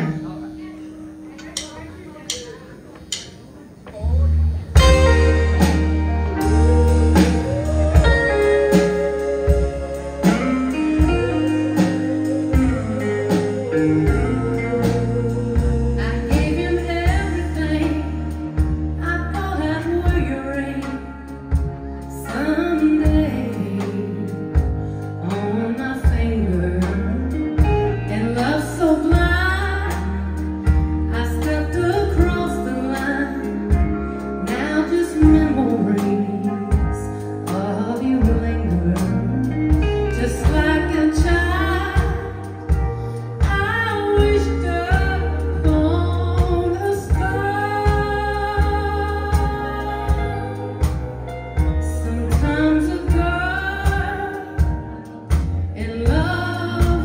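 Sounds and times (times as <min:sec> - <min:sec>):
country band playing: 0:00.0 - 0:57.0
low bass notes: 0:03.9 - 0:57.0
woman singing: 0:04.8 - 0:57.0.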